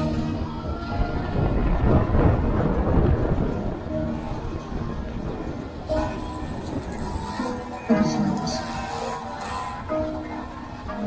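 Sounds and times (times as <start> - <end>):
wind and road rumble: 0.0 - 11.0.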